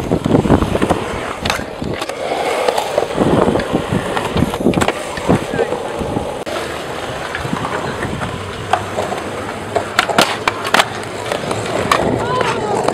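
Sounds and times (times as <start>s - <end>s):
skateboard clacks: 0.0s - 12.9s
skateboard wheels rolling on concrete: 0.0s - 12.9s.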